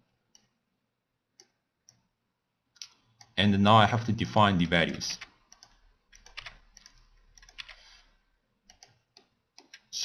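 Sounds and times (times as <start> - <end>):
keyboard and mouse clicks: 0.3 - 0.6, 1.3 - 2.1, 5.2 - 8.0, 8.7 - 9.9.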